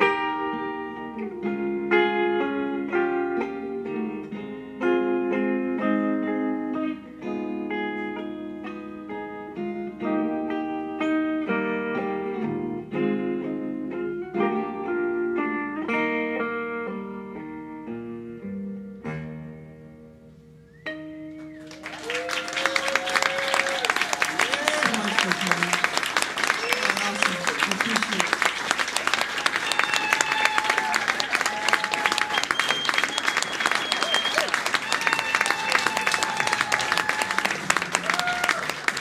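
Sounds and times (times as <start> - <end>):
audience clapping and cheering: 21.4 - 39.0.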